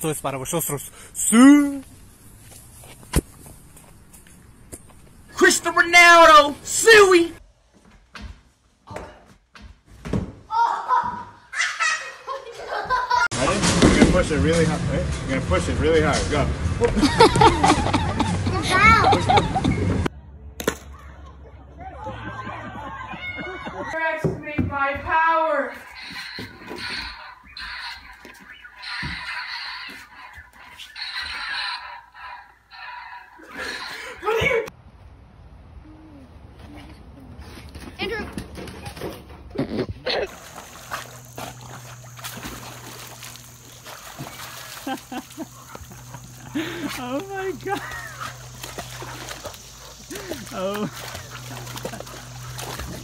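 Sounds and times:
voices: 5.3 - 7.4, 21.0 - 34.7, 43.2 - 53.0
faint low hum: 40.0 - 53.0
water splashing in pool: 40.2 - 53.0
people shouting: 46.3 - 51.7.

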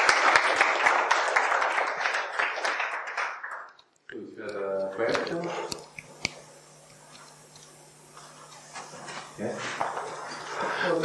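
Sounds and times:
steady low hum: 4.1 - 11.0.

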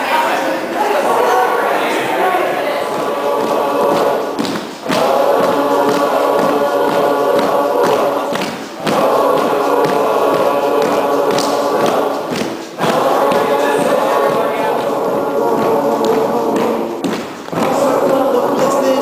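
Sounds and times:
large group singing together: 0.0 - 19.0.

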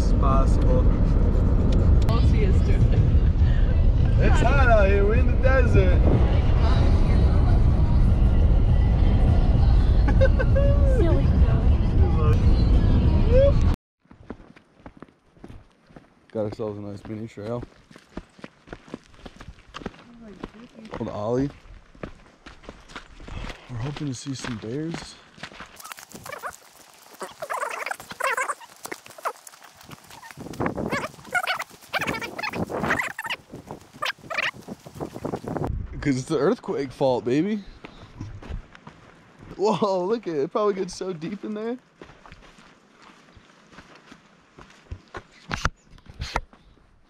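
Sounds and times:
footsteps on paved path: 14.0 - 35.7, 37.6 - 39.6, 40.9 - 47.0
wavering animal calls: 25.8 - 34.6.

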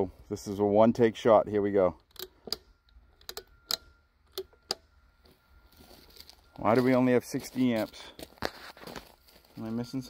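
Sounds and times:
faint steady tone: 0.0 - 10.0
circuit breakers clicking: 2.0 - 4.9.

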